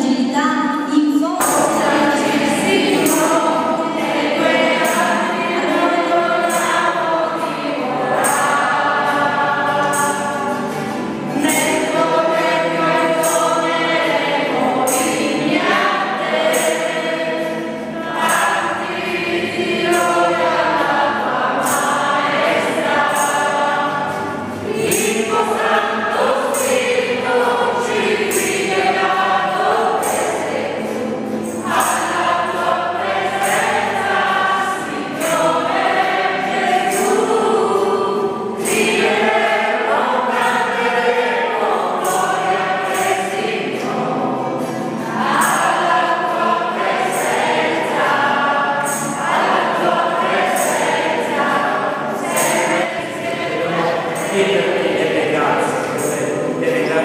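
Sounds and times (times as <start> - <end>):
congregation singing a hymn: 0.0 - 57.0
musical accompaniment: 0.8 - 57.0.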